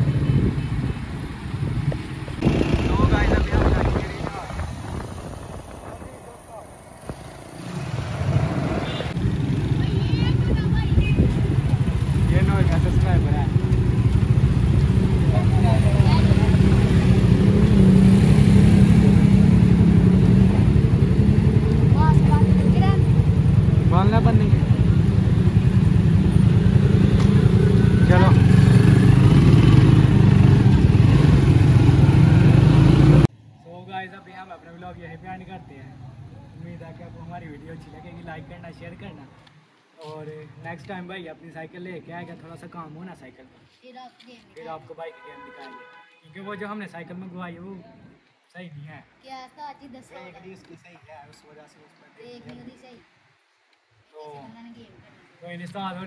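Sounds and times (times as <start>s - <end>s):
road and wind rumble: 0.0s - 46.0s, 47.0s - 56.0s.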